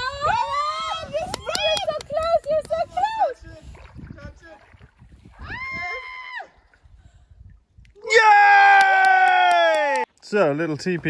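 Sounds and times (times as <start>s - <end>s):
faint water splashing: 0.0s - 9.5s.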